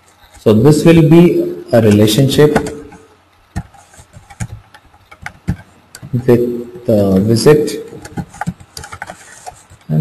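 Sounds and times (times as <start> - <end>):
computer keyboard typing: 2.5 - 6.4, 7.1 - 10.0.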